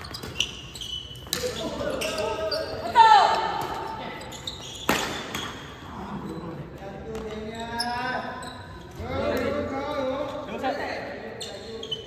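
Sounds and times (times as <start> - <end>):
rackets hitting shuttlecock: 0.0 - 1.9, 4.7 - 5.8
players talking and calling out: 0.8 - 12.0.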